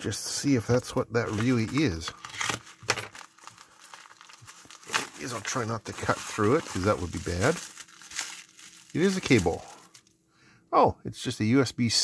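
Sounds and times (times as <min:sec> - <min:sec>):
plastic mailer ripping: 0:00.7 - 0:10.1
plastic rustling: 0:00.7 - 0:10.1.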